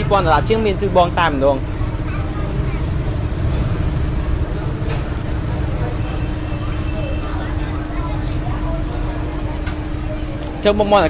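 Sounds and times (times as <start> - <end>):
constant hum: 0.0 - 11.0
faint voices: 0.0 - 11.0
street traffic rumble: 0.0 - 11.0.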